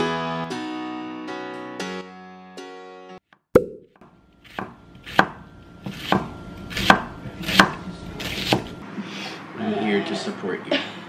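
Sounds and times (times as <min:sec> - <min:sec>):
knife chopping on wooden board: 0:03.6 - 0:08.8.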